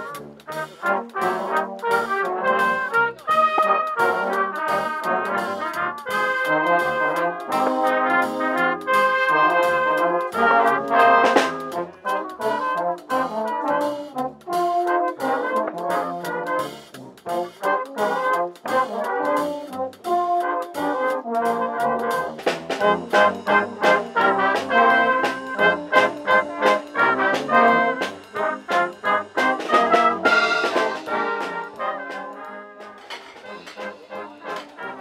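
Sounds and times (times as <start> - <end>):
brass band playing: 0.0 - 35.0
drum kit beat: 0.0 - 35.0.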